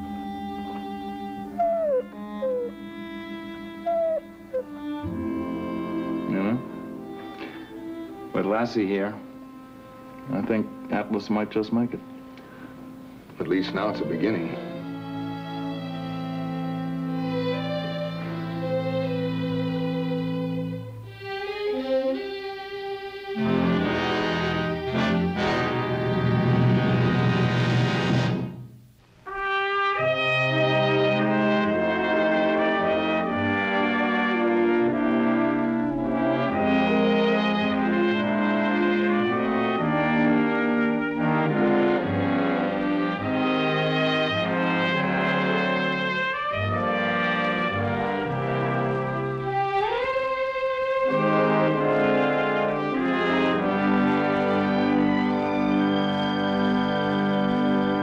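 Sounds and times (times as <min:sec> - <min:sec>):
orchestral music led by brass: 0:00.0 - 0:28.7, 0:29.3 - 0:58.0.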